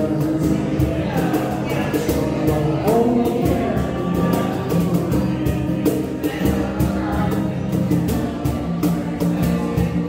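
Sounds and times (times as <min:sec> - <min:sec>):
acoustic guitar strumming: 0:00.0 - 0:10.0
man and woman singing: 0:00.0 - 0:10.0.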